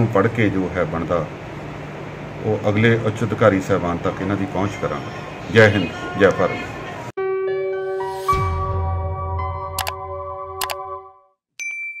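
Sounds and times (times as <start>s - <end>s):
bright ding sound effect: 11.6s - 12.0s.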